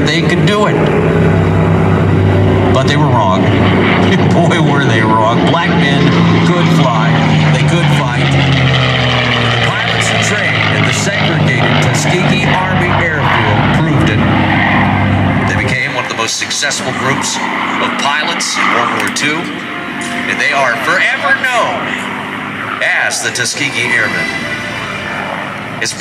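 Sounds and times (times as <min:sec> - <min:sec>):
man talking over public address: 0:00.0 - 0:01.0, 0:02.6 - 0:14.8, 0:15.4 - 0:24.6, 0:25.8 - 0:26.0
propeller aircraft engine droning: 0:00.0 - 0:26.0.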